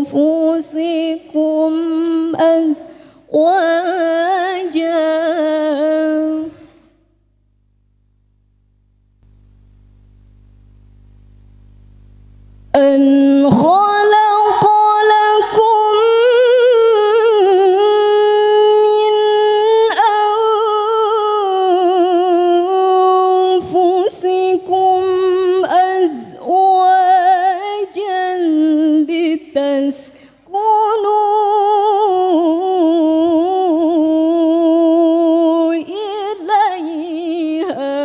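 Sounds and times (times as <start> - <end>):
woman reciting melodically: 0.0 - 6.9, 12.8 - 38.0.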